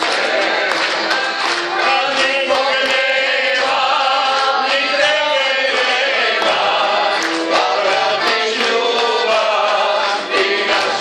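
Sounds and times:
piano accordion: 0.0s - 11.0s
voices singing a folk song: 0.0s - 11.0s.

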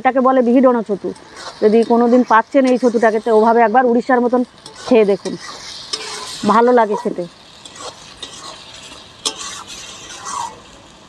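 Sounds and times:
mushrooms sizzling in oil: 0.0s - 11.0s
spatula scraping pan: 1.0s - 11.0s.

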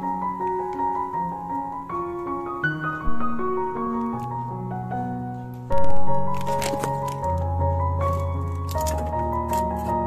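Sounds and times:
sustained instrumental music: 0.2s - 9.9s.

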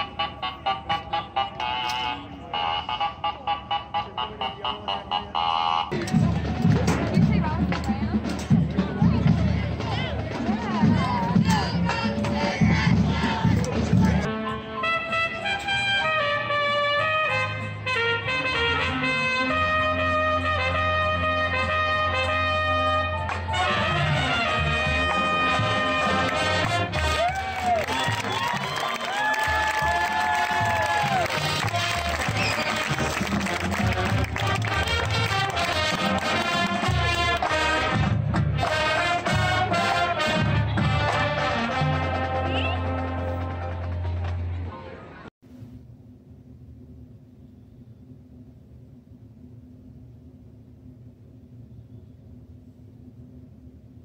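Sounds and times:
brass chords: 0.0s - 7.7s, 11.4s - 28.6s, 29.4s - 45.3s
marching band drums beating: 5.9s - 14.3s, 23.5s - 44.6s
crowd shouting: 25.2s - 33.0s.

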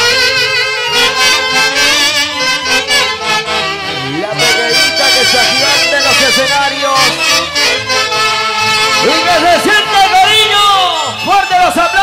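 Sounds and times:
saxophone section playing melody: 0.0s - 12.0s
stepping bass line: 0.0s - 12.0s.

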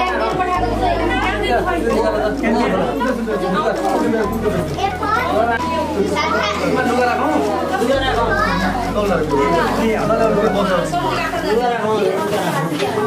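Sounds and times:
adults and children talking: 0.0s - 13.0s.

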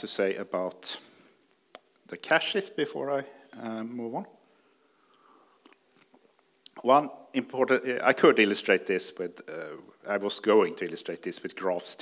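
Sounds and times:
man speaking: 0.0s - 1.2s, 2.1s - 4.4s, 6.7s - 12.0s
mouth clicks: 1.5s - 2.1s, 5.1s - 6.8s.

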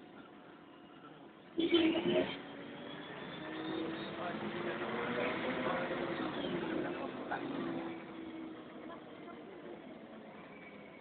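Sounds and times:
bus engine drone: 0.0s - 11.0s.

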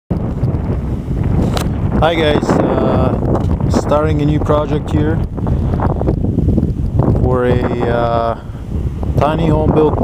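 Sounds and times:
wind buffeting microphone: 0.1s - 10.0s.

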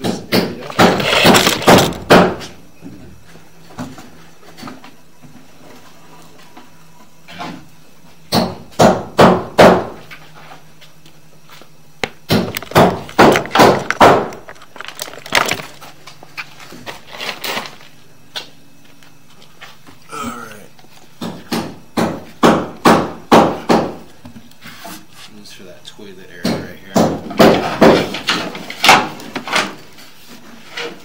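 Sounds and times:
sharp knocks and bangs: 0.0s - 2.6s, 8.3s - 10.0s, 12.0s - 15.6s, 21.2s - 24.0s, 26.4s - 29.7s.

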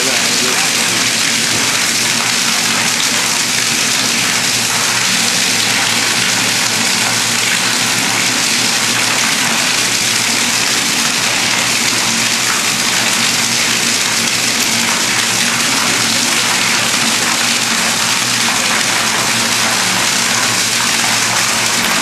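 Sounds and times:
liquid pouring into metal tank: 0.0s - 22.0s.

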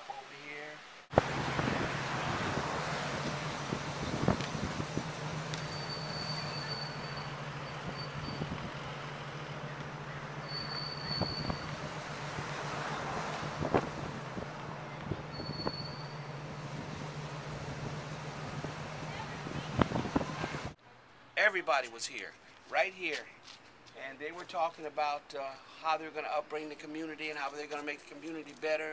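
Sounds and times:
car road and engine noise: 0.1s - 21.4s
faint high squeals: 5.1s - 11.8s, 15.3s - 16.4s.

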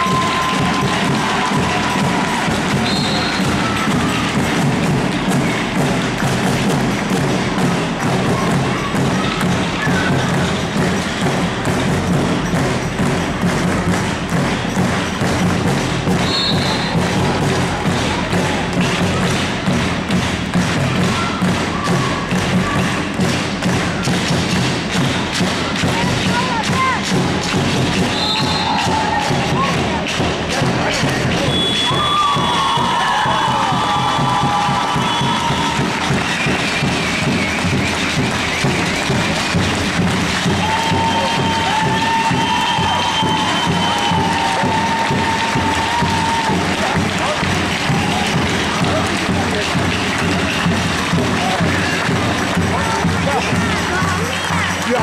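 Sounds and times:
spectators' voices: 0.0s - 55.0s.

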